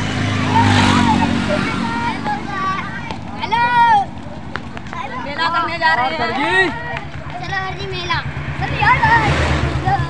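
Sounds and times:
children chattering: 0.0 - 10.0
vehicle passing by: 0.0 - 10.0.

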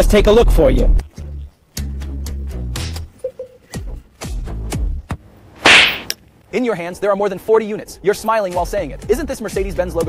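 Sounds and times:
loud crack-like noise burst: 5.6 - 6.1.

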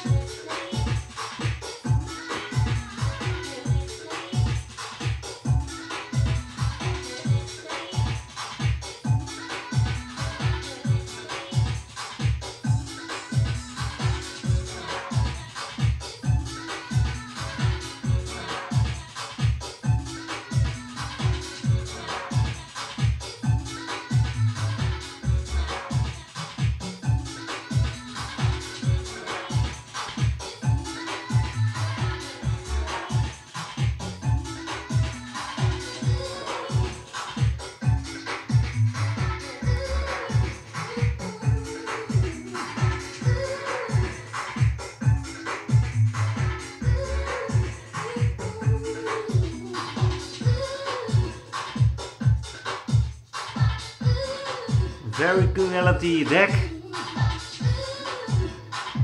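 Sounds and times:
electronic dance music: 0.0 - 59.0.

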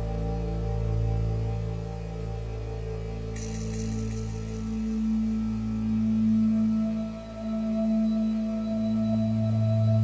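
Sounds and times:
low synthesizer pad chords: 0.0 - 10.0
bright hissing shimmer: 3.4 - 6.6.

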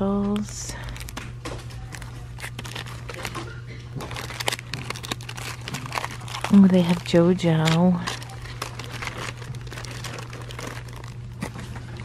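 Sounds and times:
plastic packaging crinkling: 0.0 - 12.0
steady low hum: 0.0 - 12.0.

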